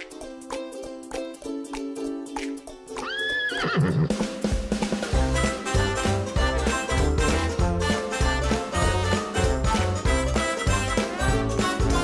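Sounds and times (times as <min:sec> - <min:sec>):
upbeat music: 0:00.0 - 0:12.0
drums: 0:02.4 - 0:12.0
horse whinny: 0:03.0 - 0:04.2.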